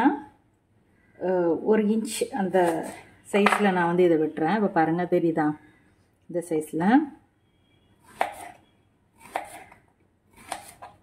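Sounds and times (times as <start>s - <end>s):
knife slicing on cutting board: 8.1s - 8.6s, 9.2s - 11.0s.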